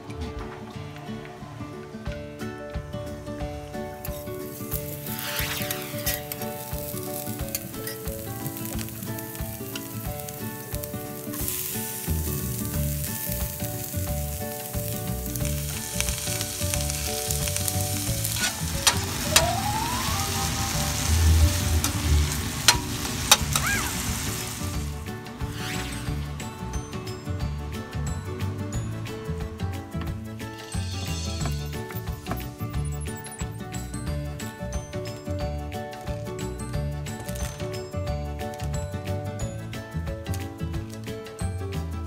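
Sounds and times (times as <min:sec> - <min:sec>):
vegetables sizzling in a skillet: 0:04.1 - 0:26.8
metal spatula scraping a pan: 0:04.8 - 0:09.8.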